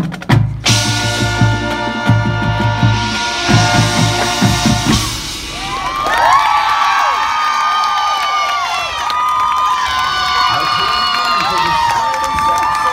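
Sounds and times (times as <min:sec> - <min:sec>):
drum hits: 0:00.0 - 0:09.1
marching band brass chord: 0:00.6 - 0:08.2
crowd cheering and yelling: 0:03.7 - 0:12.9.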